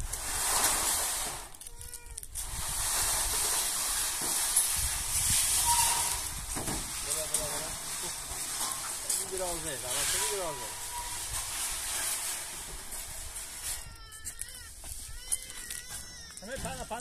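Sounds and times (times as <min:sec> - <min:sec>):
metal roofing sheets scraping: 0:00.0 - 0:01.7, 0:02.3 - 0:17.0.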